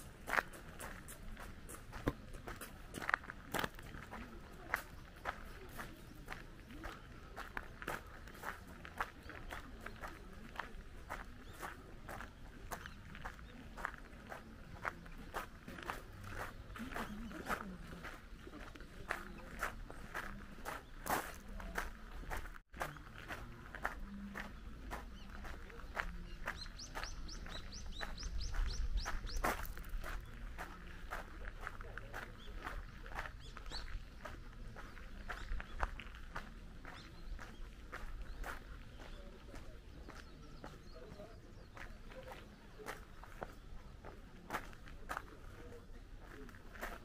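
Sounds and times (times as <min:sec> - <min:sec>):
footsteps on gravel: 0:00.0 - 0:47.0.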